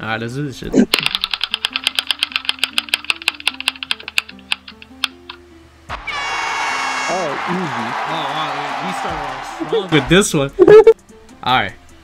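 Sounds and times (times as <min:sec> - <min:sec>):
quiet background music: 0:00.0 - 0:12.0
spinning wheel ticking clicks: 0:01.0 - 0:05.4
applause sound effect: 0:07.1 - 0:10.2.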